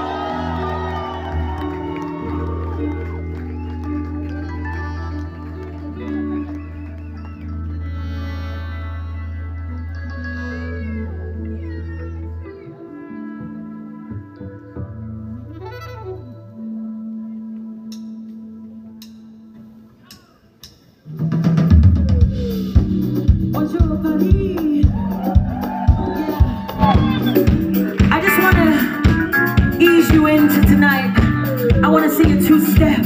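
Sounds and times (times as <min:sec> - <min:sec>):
live band music: 0:00.0 - 0:33.0.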